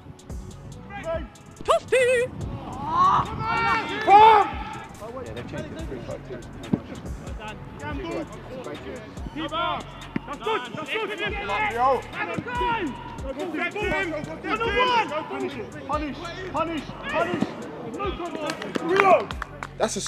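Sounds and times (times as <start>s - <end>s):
footballers shouting: 0.8s - 19.5s.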